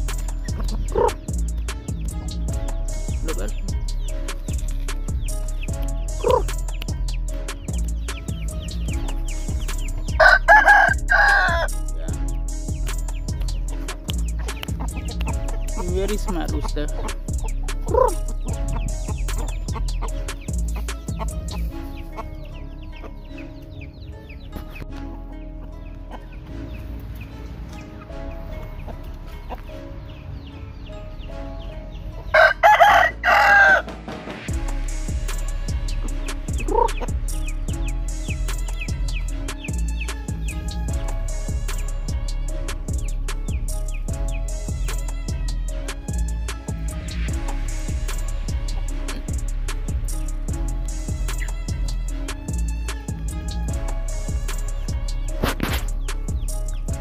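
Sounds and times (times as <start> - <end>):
background music with steady beat: 0.0 - 57.0
rooster crowing: 10.2 - 11.7, 32.3 - 33.9.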